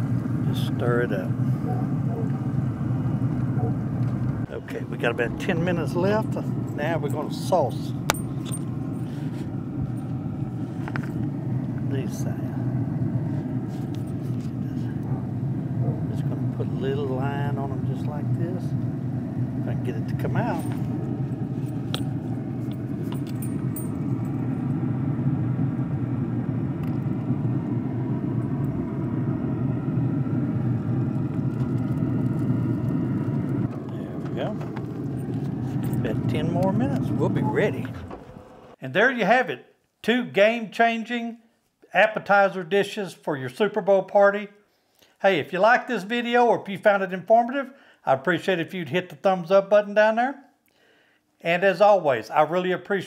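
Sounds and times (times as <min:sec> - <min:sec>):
pellet grill fan humming: 0:00.0 - 0:38.8
steady low rumble: 0:00.0 - 0:38.8.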